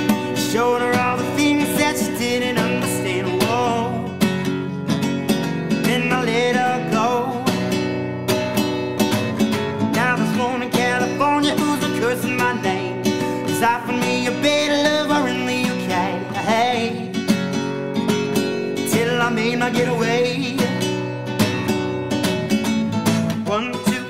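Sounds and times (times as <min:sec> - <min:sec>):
man singing: 0:00.0 - 0:08.2, 0:09.4 - 0:17.6, 0:18.2 - 0:21.4, 0:23.0 - 0:24.0
acoustic guitar strumming: 0:00.0 - 0:24.0.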